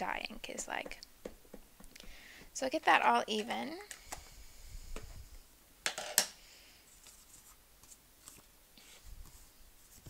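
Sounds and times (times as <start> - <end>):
paper rustling: 6.9 - 10.0.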